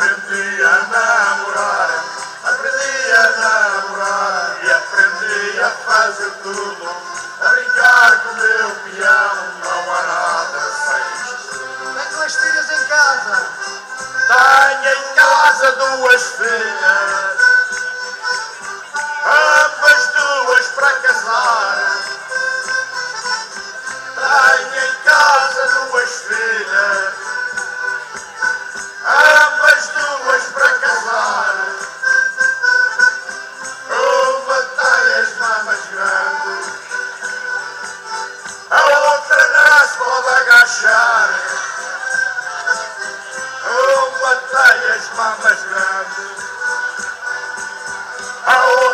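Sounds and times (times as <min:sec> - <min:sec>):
men singing: 0:00.0 - 0:17.9, 0:18.6 - 0:22.4, 0:23.6 - 0:32.4, 0:33.0 - 0:48.9
folk band accompaniment: 0:00.0 - 0:48.9.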